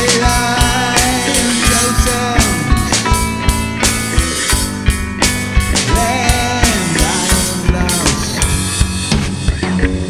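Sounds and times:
drum kit strokes: 0.0 - 10.0
electric guitar note bending: 0.0 - 10.0.

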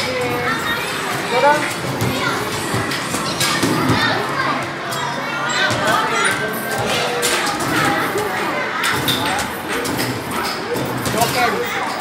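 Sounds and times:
children's voices and chatter: 0.0 - 12.0.

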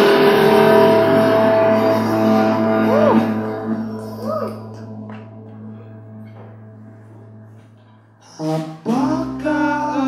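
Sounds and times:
rock band chord ringing out: 0.0 - 4.0.

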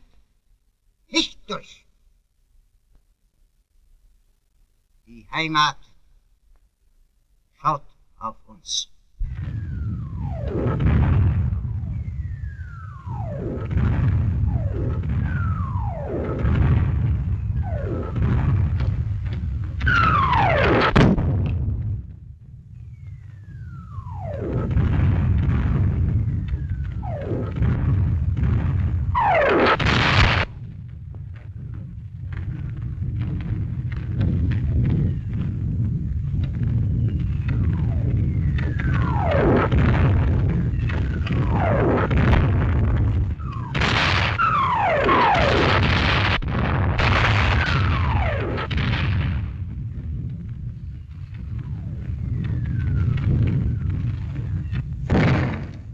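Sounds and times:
distant guns rumbling: 9.2 - 55.9
shell explosions: 9.2 - 55.9
shells whistling down: 36.9 - 42.3, 51.4 - 54.8.

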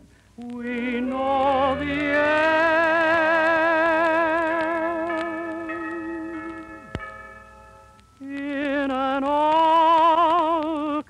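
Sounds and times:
tenor singing a long note: 0.5 - 7.0
orchestral accompaniment: 0.8 - 3.5.

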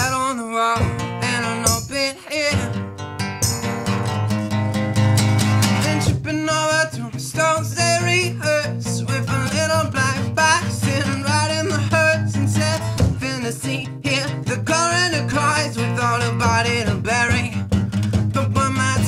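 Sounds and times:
man singing: 0.0 - 3.0, 5.5 - 19.0
acoustic guitar: 0.0 - 19.0.

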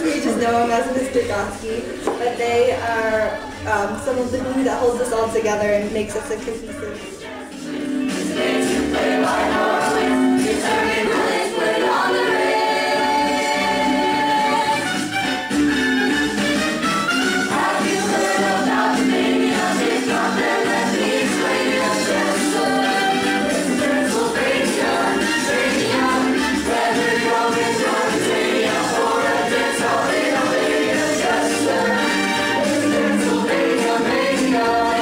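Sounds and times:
music: 0.0 - 35.0
choir singing in harmony: 6.0 - 15.5, 17.1 - 35.0.

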